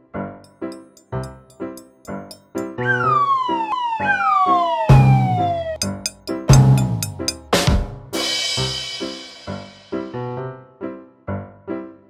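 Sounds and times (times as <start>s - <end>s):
bouncy piano tune: 0.0s - 12.0s
cartoon falling whistle: 2.8s - 5.8s.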